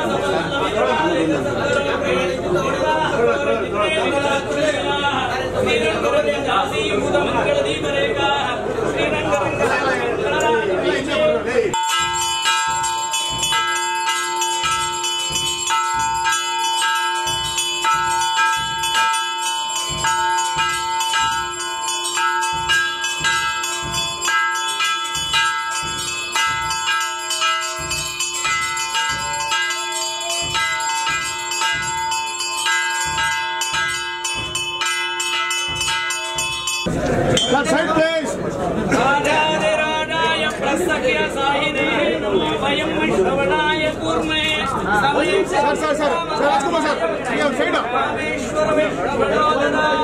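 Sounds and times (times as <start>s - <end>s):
brass bell ringing: 11.7s - 38.2s.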